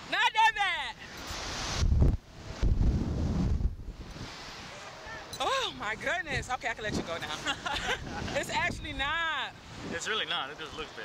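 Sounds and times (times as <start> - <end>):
wind buffeting microphone: 1.3 - 10.4.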